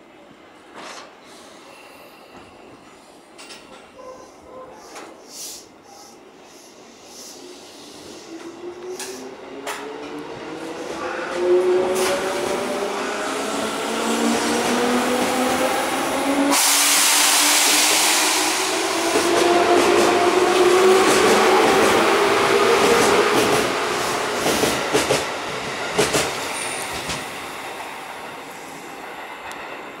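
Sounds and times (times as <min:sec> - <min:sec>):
train running noise: 0:00.6 - 0:30.0
train wheel clacks: 0:24.4 - 0:27.3.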